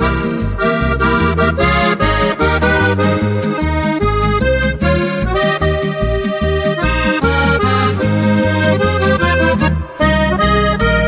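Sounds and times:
accordion playing a tune: 0.0 - 11.0
bouncing bass beat: 0.0 - 11.0.

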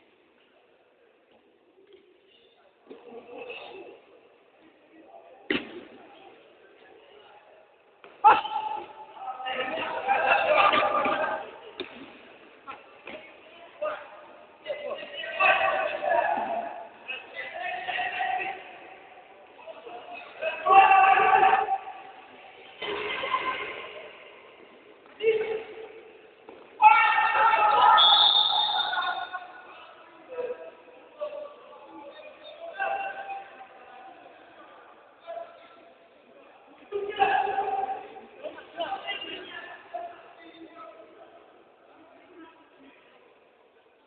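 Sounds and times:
ball hit echoing in hall: 5.4 - 6.2, 8.0 - 14.1, 20.6 - 29.6
person shouting: 20.4 - 22.0, 26.8 - 29.4
high-pitched yell: 26.8 - 29.5.

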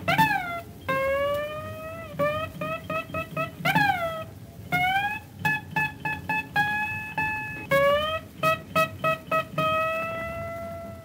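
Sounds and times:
guitar with sliding notes: 0.0 - 11.0.

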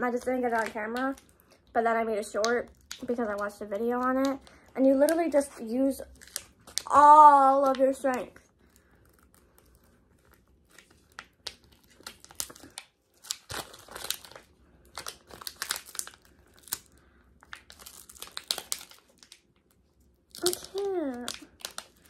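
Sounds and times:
foil packet crinkling: 0.0 - 22.0.

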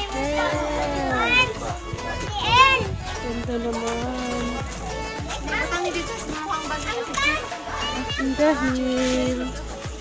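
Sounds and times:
other voices: 0.0 - 9.8
background music: 0.0 - 10.0.

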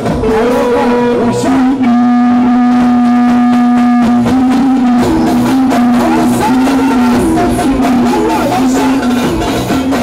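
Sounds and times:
live dance music: 0.0 - 10.0.

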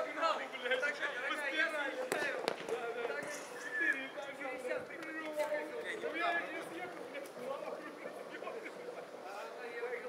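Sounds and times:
voices talking and calling out: 0.0 - 10.0.

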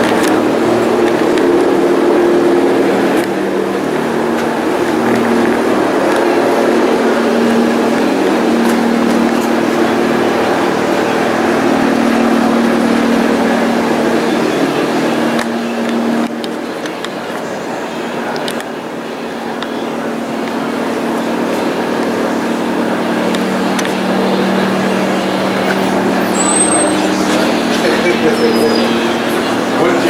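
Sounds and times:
engine running steadily: 0.0 - 30.0
outdoor background noise: 0.0 - 30.0.

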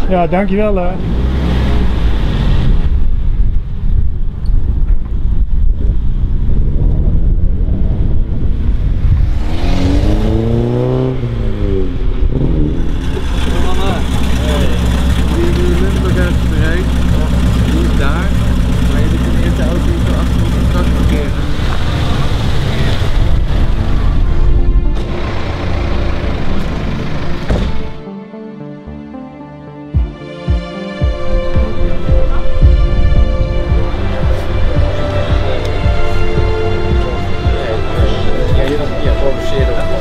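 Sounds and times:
car engine drone: 0.0 - 28.1, 31.1 - 40.0
car passing: 5.2 - 28.0.

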